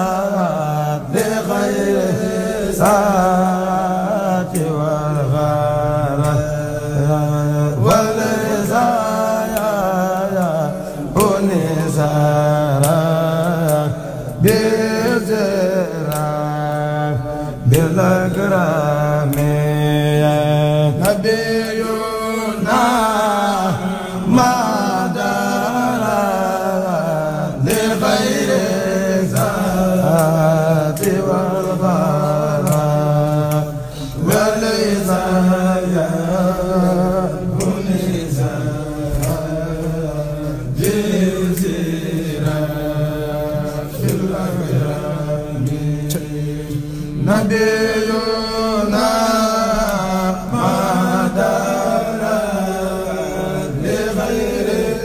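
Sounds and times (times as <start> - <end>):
men chanting devotional poem: 0.0 - 55.0.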